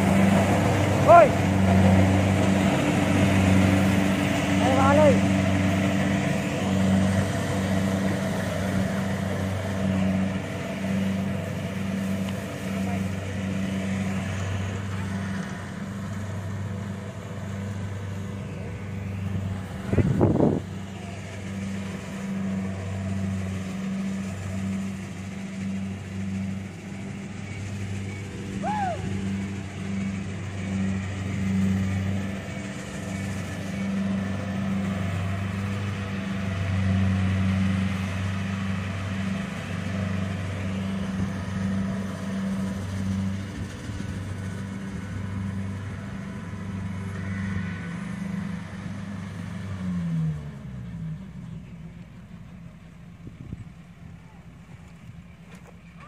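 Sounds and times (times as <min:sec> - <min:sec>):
combine harvester engine humming: 0:00.0 - 0:56.0.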